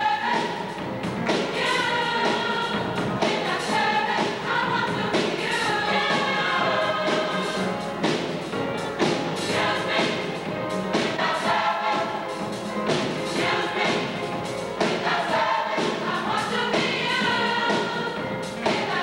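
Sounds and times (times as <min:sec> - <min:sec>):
gospel choir singing: 0:00.0 - 0:19.0.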